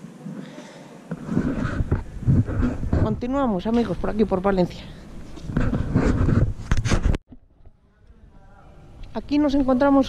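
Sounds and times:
wind noise on microphone: 0:01.2 - 0:04.3.

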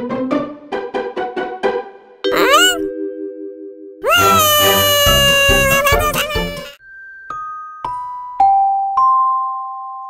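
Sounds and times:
cartoon character wailing: 0:02.3 - 0:02.9, 0:04.0 - 0:06.8.

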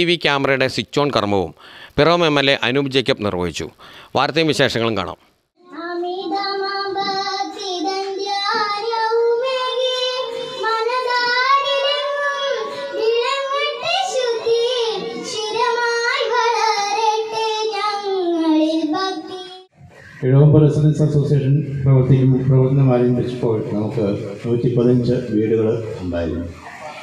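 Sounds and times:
girl singing into microphone: 0:05.6 - 0:19.7.

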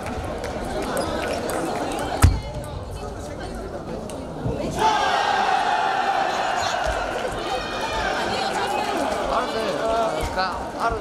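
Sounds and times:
hubbub of voices: 0:00.0 - 0:11.0.

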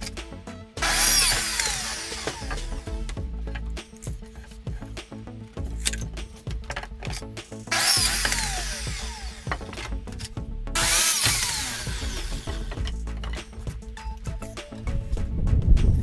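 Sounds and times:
background music: 0:00.0 - 0:16.0
miter saw cutting wood: 0:00.8 - 0:04.9, 0:07.6 - 0:13.8.

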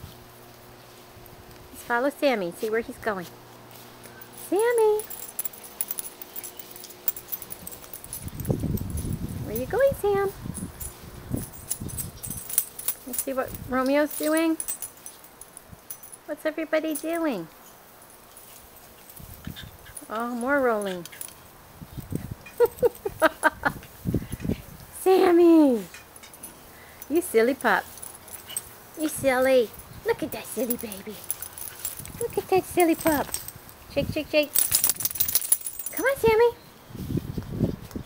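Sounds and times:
camera handling clicks and jingles: 0:05.0 - 0:09.2, 0:30.6 - 0:33.7, 0:34.5 - 0:36.2
woman laughing: 0:22.5 - 0:23.9.

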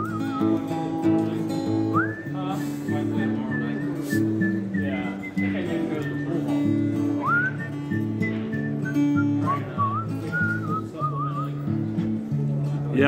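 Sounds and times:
whistled melody: 0:00.0 - 0:01.2, 0:01.8 - 0:11.7
acoustic guitar country accompaniment: 0:00.0 - 0:13.0.

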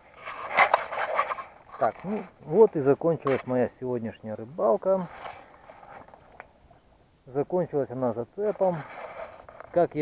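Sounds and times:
faint rustling handling noise: 0:07.8 - 0:10.0.

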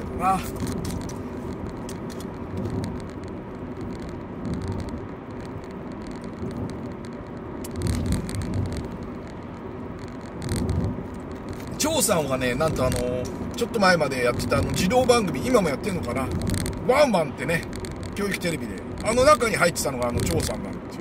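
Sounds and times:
engine and tyre hum: 0:00.0 - 0:21.0
light clicks and rattles: 0:00.3 - 0:21.0.

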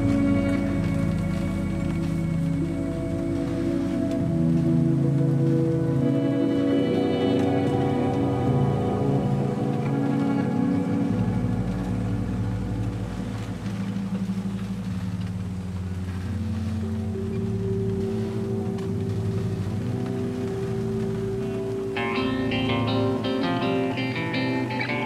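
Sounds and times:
instrumental music with sustained chords: 0:00.0 - 0:25.0.

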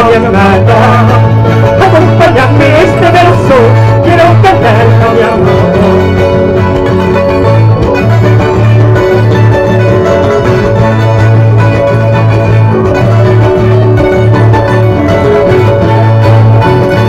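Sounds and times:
folk music on string instruments: 0:00.0 - 0:17.0.

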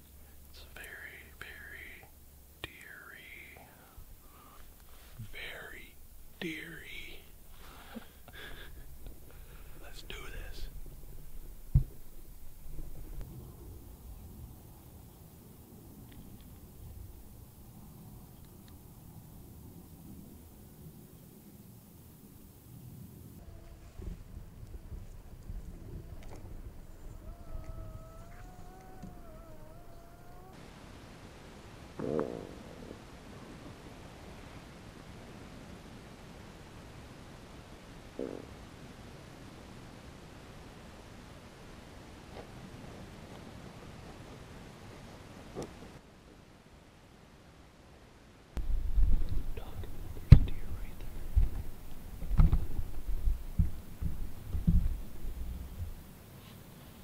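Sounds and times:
loud buzzing fart: 0:23.4 - 0:30.5
dull low thumps: 0:48.6 - 0:56.0.

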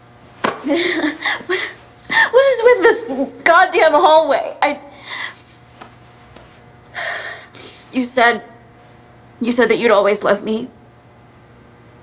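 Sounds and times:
woman crying: 0:00.7 - 0:03.5
woman speaking: 0:02.2 - 0:05.0, 0:07.9 - 0:08.6, 0:09.4 - 0:10.8.

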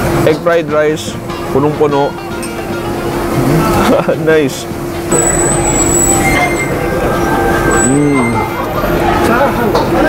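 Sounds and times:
train rumbling: 0:03.0 - 0:10.0
train wheels squealing: 0:05.1 - 0:08.6.

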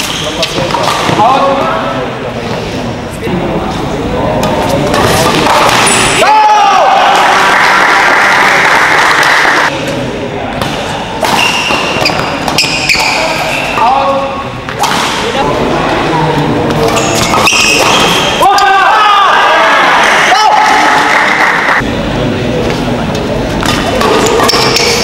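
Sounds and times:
rackets hitting shuttlecock: 0:04.4 - 0:06.2, 0:10.5 - 0:13.8, 0:14.7 - 0:15.4, 0:16.7 - 0:18.4, 0:23.6 - 0:25.0.

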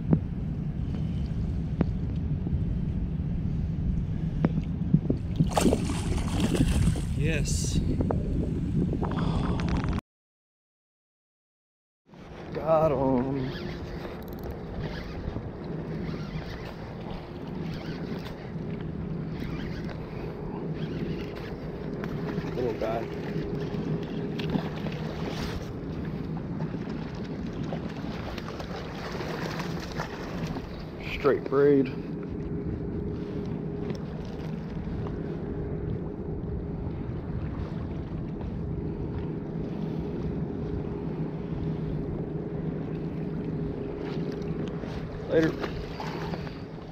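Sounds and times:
water at shoreline: 0:00.0 - 0:10.0, 0:12.0 - 0:46.9
wind: 0:00.0 - 0:10.0, 0:12.0 - 0:46.9
low drone: 0:12.2 - 0:46.9.

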